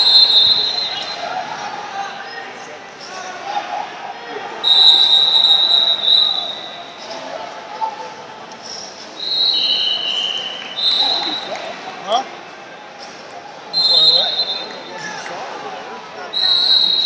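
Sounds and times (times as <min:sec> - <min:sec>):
referee whistle blasts: 0:00.0 - 0:01.3, 0:04.6 - 0:07.0, 0:09.2 - 0:11.6, 0:13.7 - 0:14.9, 0:16.3 - 0:17.0
background chatter: 0:00.0 - 0:17.0.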